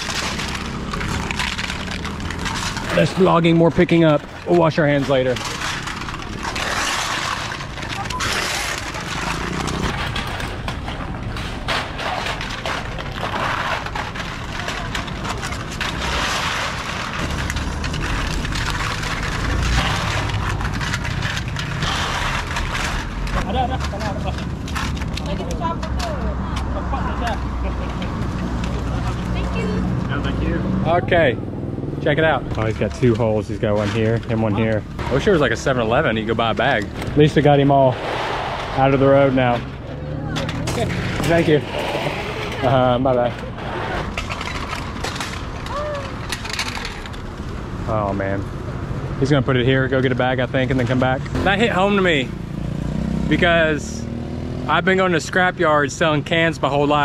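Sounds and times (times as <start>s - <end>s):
aluminium cans clattering on asphalt: 0.0s - 30.3s, 32.1s - 37.4s, 39.4s - 48.4s
traffic rumble: 0.0s - 57.0s
voices: 25.2s - 38.0s, 38.7s - 44.2s, 49.2s - 52.4s.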